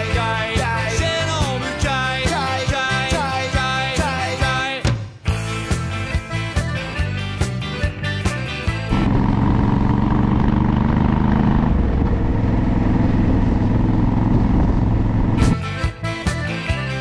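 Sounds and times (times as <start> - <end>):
background music: 0.0 - 9.1, 15.4 - 17.0
motorcycle engine running: 8.6 - 15.7.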